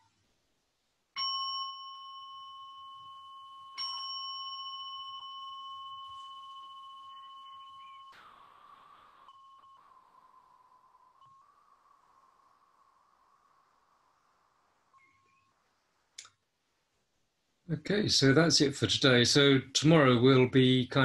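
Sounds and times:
meditation bell ringing: 0:01.2 - 0:11.5.

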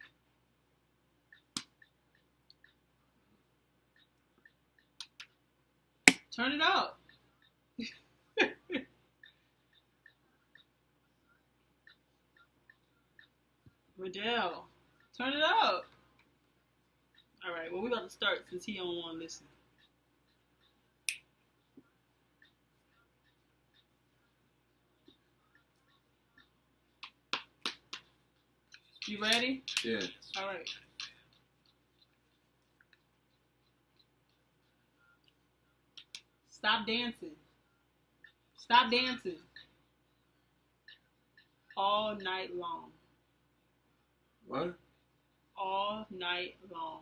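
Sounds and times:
faint small ticks: 0:01.3 - 0:02.9, 0:03.9 - 0:05.4, 0:19.4 - 0:36.4
finger snap: 0:27.0 - 0:28.1.

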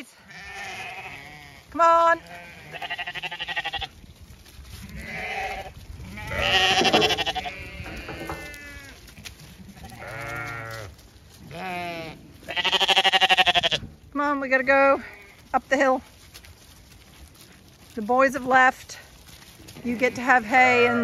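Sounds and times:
sheep bleating: 0:00.0 - 0:04.0, 0:04.8 - 0:09.0, 0:09.6 - 0:13.9, 0:20.1 - 0:21.0.

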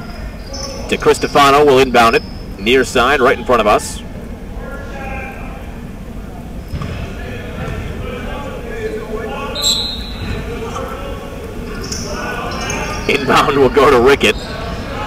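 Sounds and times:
crowd chatter: 0:00.0 - 0:15.0
basketball bouncing on court: 0:06.7 - 0:08.2, 0:10.0 - 0:10.8.

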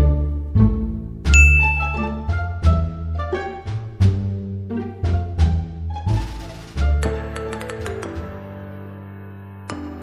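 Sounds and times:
pizzicato string music: 0:00.0 - 0:10.0
bright ding: 0:01.3 - 0:02.2.

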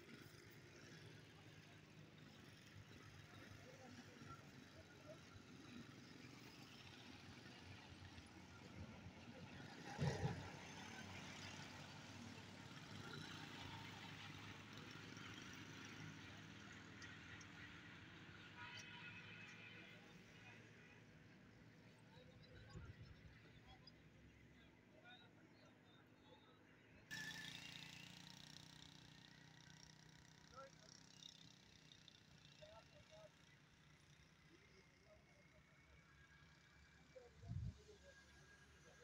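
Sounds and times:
motorcycle riding past: 0:27.1 - 0:30.0.

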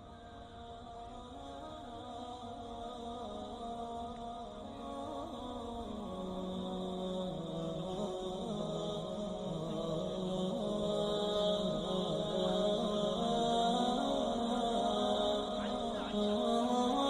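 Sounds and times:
slow droning chant: 0:00.0 - 0:17.0.

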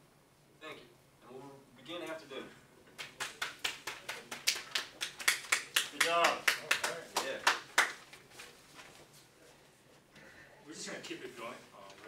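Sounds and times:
people clapping: 0:02.9 - 0:08.3.

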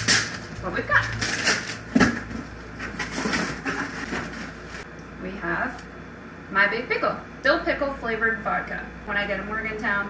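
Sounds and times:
cardboard and packing rustling: 0:00.0 - 0:04.9.

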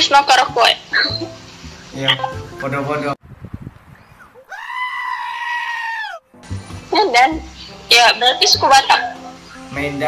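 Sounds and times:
goat bleat: 0:04.5 - 0:06.2.

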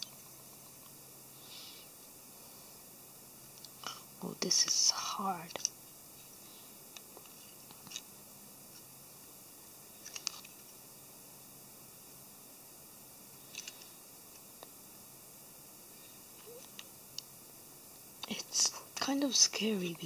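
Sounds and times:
faint steady hiss: 0:00.0 - 0:20.0
plastic parts clicking: 0:13.5 - 0:13.9.

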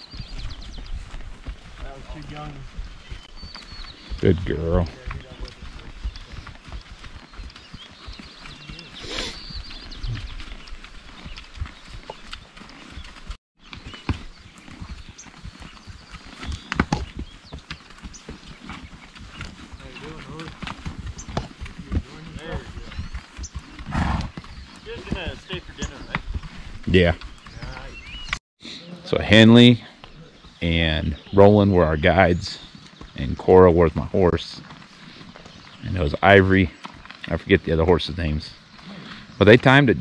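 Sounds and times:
horse hooves on dirt: 0:00.0 - 0:40.0.

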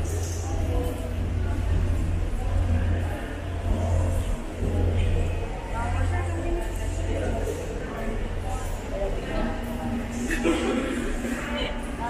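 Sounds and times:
faint crowd chatter: 0:00.0 - 0:12.0
steady low rumble: 0:00.0 - 0:12.0.

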